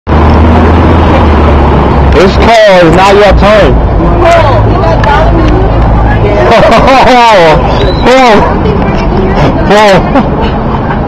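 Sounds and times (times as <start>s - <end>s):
city traffic rumble: 0.1s - 11.0s.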